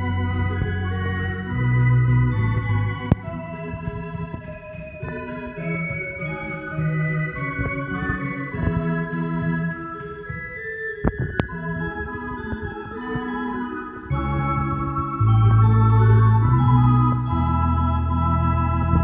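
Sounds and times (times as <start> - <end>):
deep pedal bass notes: 0.0 - 10.4, 11.1 - 19.0
electronic organ chords: 0.0 - 19.0.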